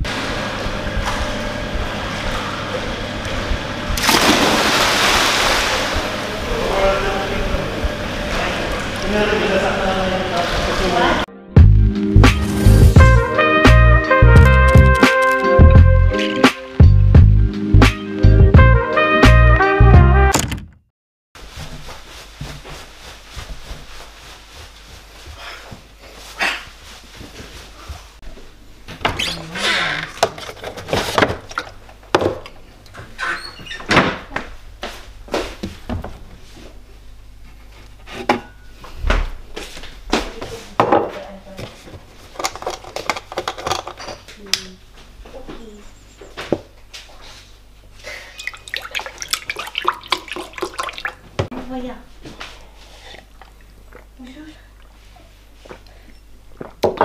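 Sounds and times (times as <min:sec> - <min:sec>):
juice pouring into a glass: 0:48.4 - 0:51.2.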